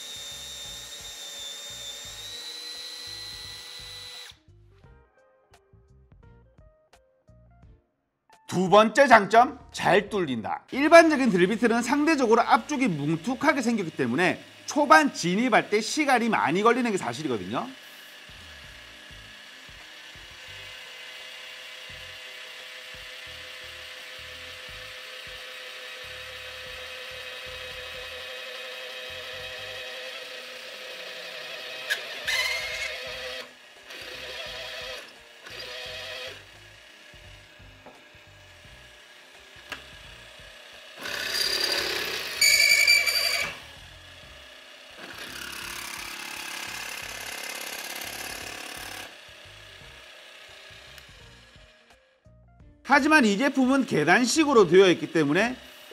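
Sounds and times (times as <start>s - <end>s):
drill cutting metal: 0.0s - 4.4s, 10.7s - 52.0s, 52.9s - 55.9s
drill press motor whine: 0.0s - 4.4s, 10.7s - 52.0s, 52.9s - 55.9s
sharp metal squeal: 42.4s - 43.6s.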